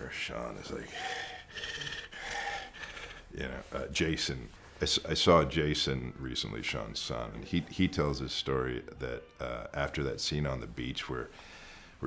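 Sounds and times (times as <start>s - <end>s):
man panting: 0.8s - 3.4s.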